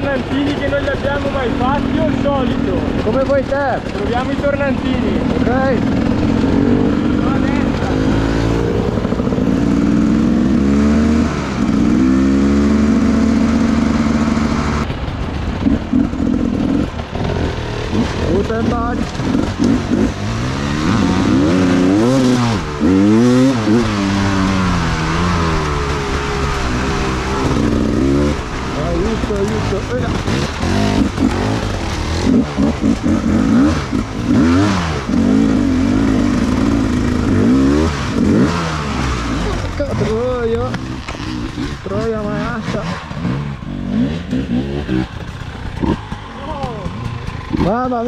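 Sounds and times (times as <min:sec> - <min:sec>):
motorcycle engines revving: 0:00.0 - 0:48.0.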